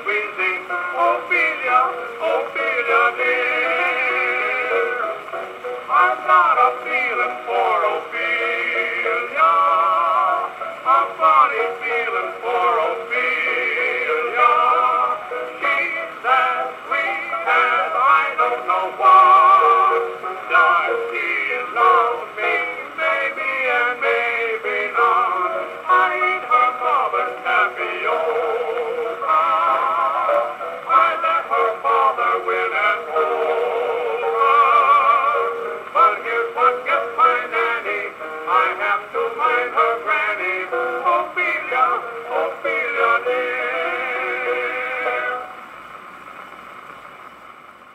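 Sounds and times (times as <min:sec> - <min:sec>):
thin wavering gramophone music: 0:00.0 - 0:47.9.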